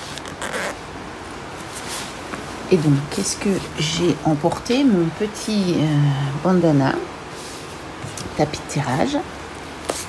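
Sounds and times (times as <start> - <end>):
bag zipper opening: 0.0 - 0.9.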